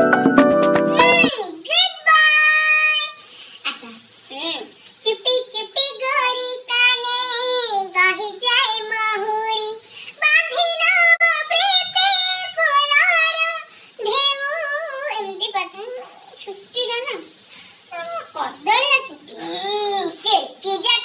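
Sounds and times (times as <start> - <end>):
high-pitched voice singing: 0.7 - 3.2, 5.1 - 16.3.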